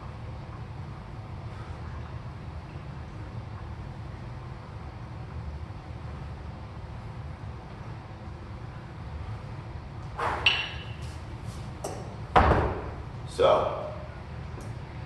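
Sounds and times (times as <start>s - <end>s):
steady low hum: 0.0s - 15.0s
kettlebells thudding on floor: 11.8s - 13.0s.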